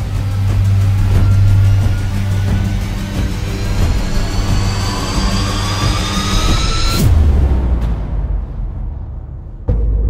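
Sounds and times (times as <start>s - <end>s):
dense low rumble: 0.0s - 10.0s.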